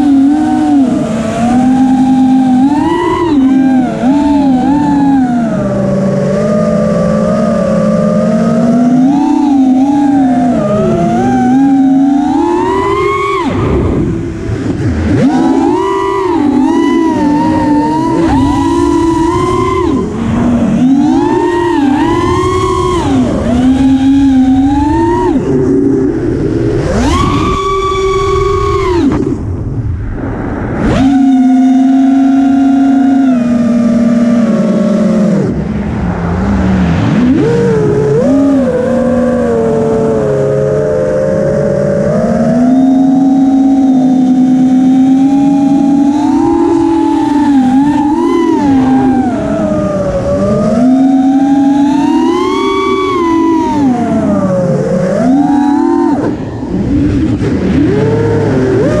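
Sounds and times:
drone motors whining: 0.0 - 59.0
wind rush: 9.2 - 31.8, 35.4 - 41.2, 45.6 - 59.0.

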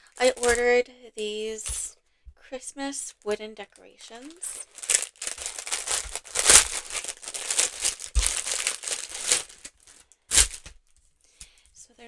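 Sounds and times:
plastic bag crinkling: 0.1 - 0.7, 4.1 - 10.7.

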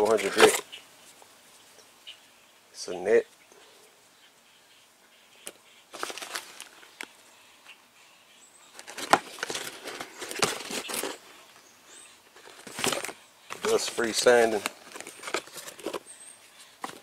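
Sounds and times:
foil packet rustling: 0.0 - 0.6, 5.9 - 6.9, 8.7 - 11.4, 12.3 - 17.0
rustling of sanding discs and box: 0.0 - 1.2, 5.9 - 7.1, 8.7 - 11.6, 12.3 - 17.0.

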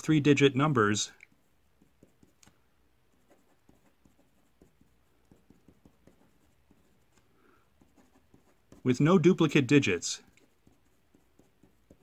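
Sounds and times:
marker pen scratching on paper: 1.3 - 12.0.

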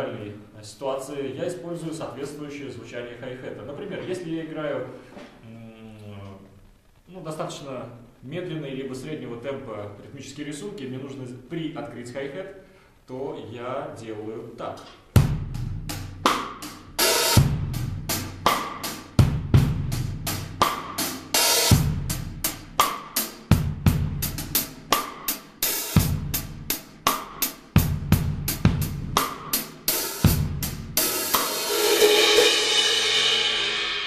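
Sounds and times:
half-open hi-hat strokes: 15.1 - 34.0
sustained cymbal wash: 15.2 - 34.0.

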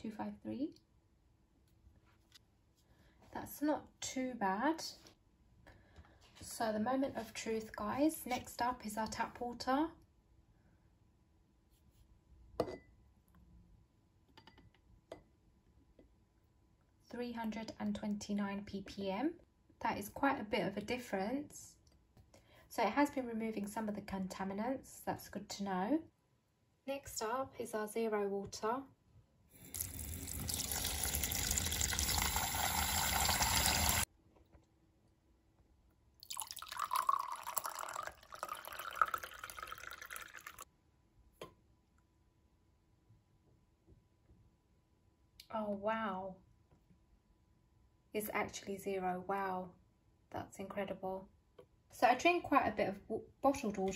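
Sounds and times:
water pouring into glass: 29.6 - 34.0, 36.2 - 40.6
water running into plastic jug: 29.6 - 34.0, 36.2 - 40.6.

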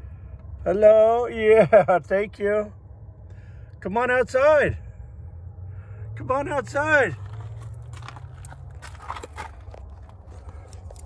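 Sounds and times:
steady low rumble: 0.0 - 11.0
footsteps: 7.2 - 11.0
light clicks and scuffs: 7.2 - 11.0.

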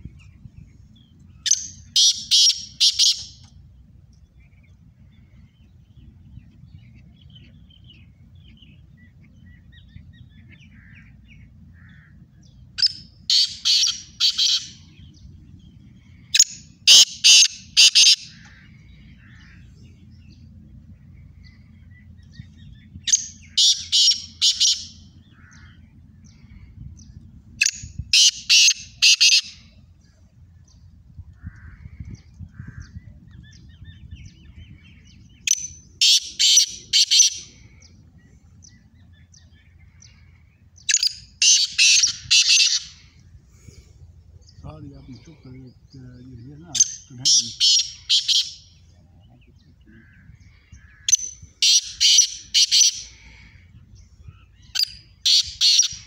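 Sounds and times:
francolins calling: 0.0 - 56.0.

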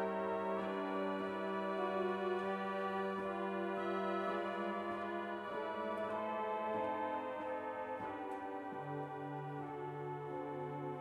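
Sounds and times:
organ playing soft chords: 0.0 - 11.0.

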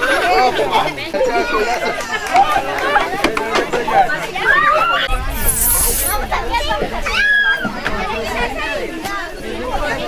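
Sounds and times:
children chattering and calling: 0.0 - 10.0
high hiss: 5.1 - 6.3.

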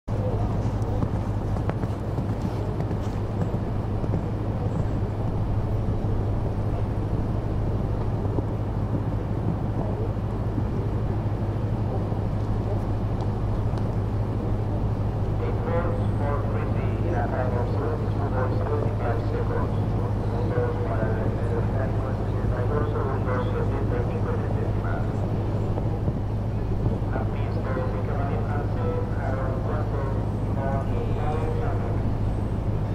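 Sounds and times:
steady low hum: 0.0 - 32.9
distant voice talking: 26.9 - 32.9.

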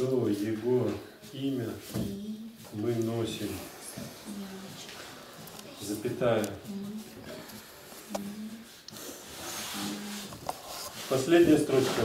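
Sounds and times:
pens scratching on paper: 2.0 - 12.0
soft voice murmurs: 3.4 - 10.4.

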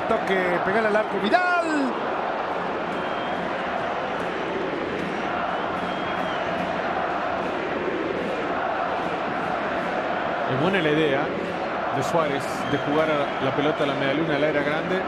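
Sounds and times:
stadium crowd voices: 0.0 - 15.0.

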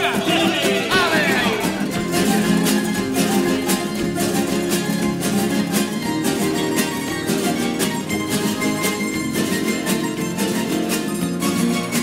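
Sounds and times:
plucked-string band playing tango: 0.0 - 12.0.

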